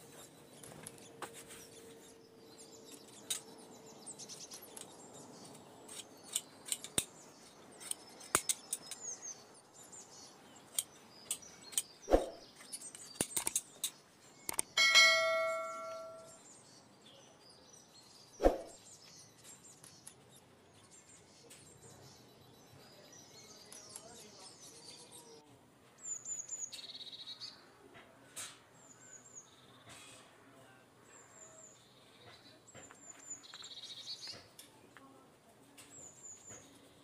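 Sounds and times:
sharp clicks: 0:07.8 - 0:09.1, 0:10.7 - 0:14.8
metallic clang ringing: 0:14.8 - 0:16.4.

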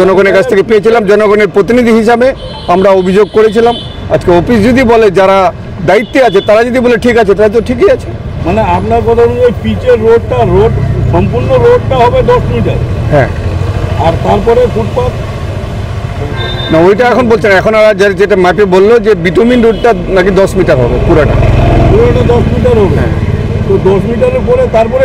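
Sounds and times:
man talking: 0:00.0 - 0:15.2, 0:16.6 - 0:25.0
road traffic: 0:00.0 - 0:25.0
vehicle engine rumble: 0:04.0 - 0:25.0.

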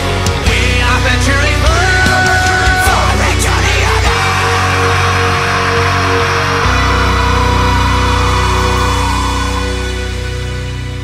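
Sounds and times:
bass guitar: 0:00.0 - 0:11.0
distorted electric guitars: 0:00.0 - 0:11.0.

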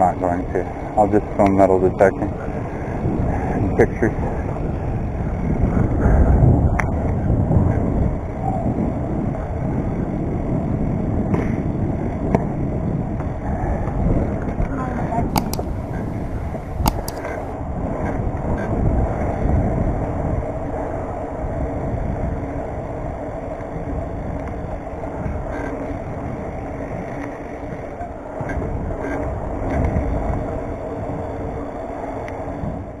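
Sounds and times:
tyres rolling on asphalt: 0:00.0 - 0:33.0
wind on microphone: 0:00.0 - 0:33.0
bike knocks and rattles: 0:11.2 - 0:13.4, 0:15.3 - 0:16.1, 0:16.8 - 0:18.7.

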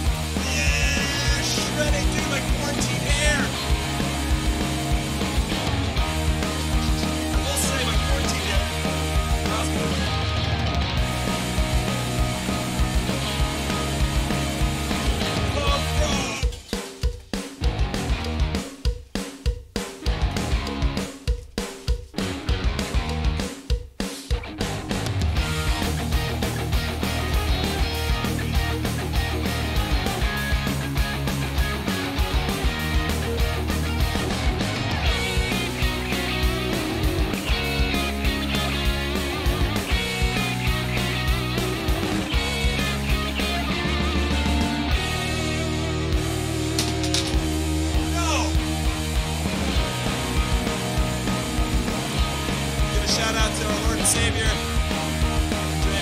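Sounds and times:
loud electric guitar rock music: 0:00.0 - 0:18.8, 0:19.8 - 0:21.3, 0:22.1 - 0:56.0.

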